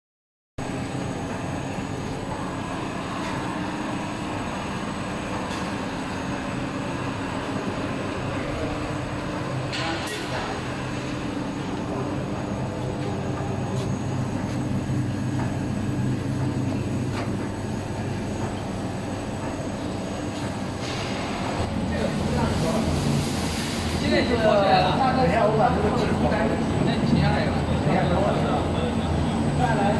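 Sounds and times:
machine hum and rolling: 0.6s - 29.9s.

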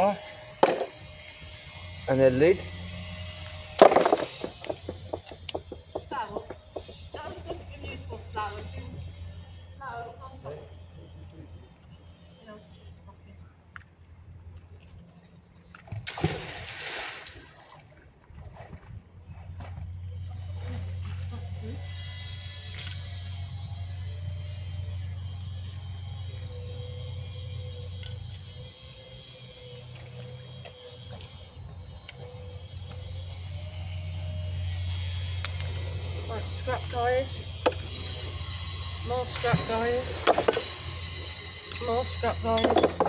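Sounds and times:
steady low hum: 0.0s - 43.0s
magnet splashing into water: 15.9s - 17.8s.

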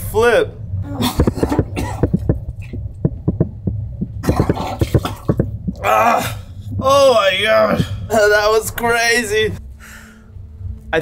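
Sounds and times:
steady low hum: 0.0s - 11.0s
man retching and vomiting: 0.8s - 2.8s, 4.2s - 6.6s.

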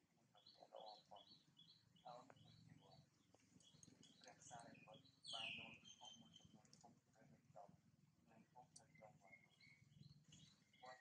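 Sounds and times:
small bird chirping: 0.1s - 11.0s.

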